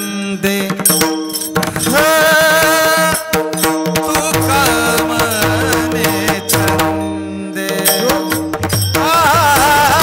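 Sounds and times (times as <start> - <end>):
drum strokes: 0.5 - 10.0.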